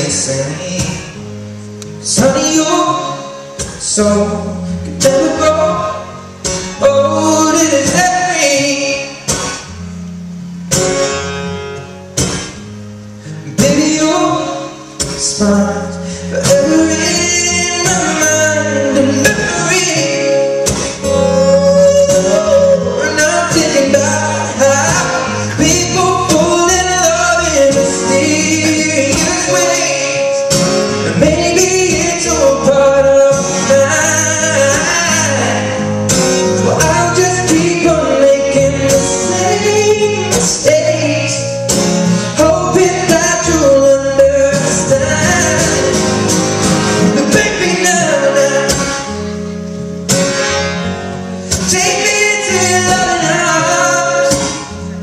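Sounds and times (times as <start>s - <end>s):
man singing: 0.0s - 1.2s, 2.0s - 9.4s, 13.4s - 49.3s, 51.5s - 55.0s
acoustic guitar chords ringing: 0.0s - 55.0s.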